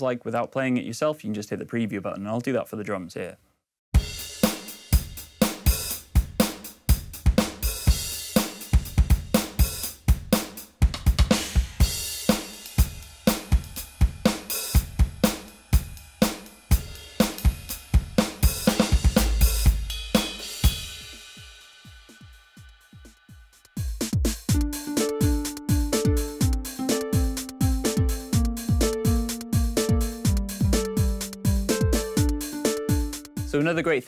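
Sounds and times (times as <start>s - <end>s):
snare drum: 4.0s - 21.4s, 24.0s - 33.6s
kick drum: 8.8s - 12.0s, 23.8s - 33.6s
cymbals: 11.5s - 23.7s.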